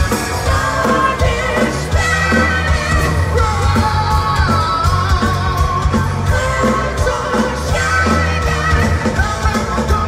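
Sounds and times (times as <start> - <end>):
live hard rock band: 0.0 - 10.0.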